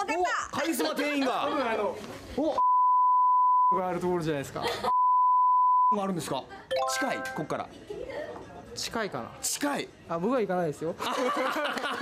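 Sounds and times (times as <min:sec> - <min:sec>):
censor bleep tone: 0:02.6 - 0:03.8, 0:04.9 - 0:06.0
electronic sound effect: 0:06.7 - 0:07.6.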